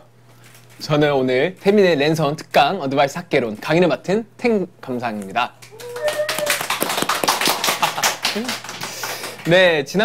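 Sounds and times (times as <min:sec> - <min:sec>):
sharp hand claps: 0:05.6 - 0:09.6.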